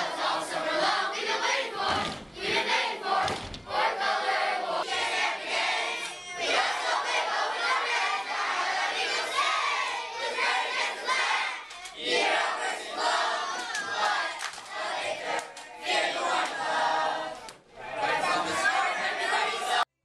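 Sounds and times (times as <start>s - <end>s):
boys chanting in unison: 0.0s - 19.9s.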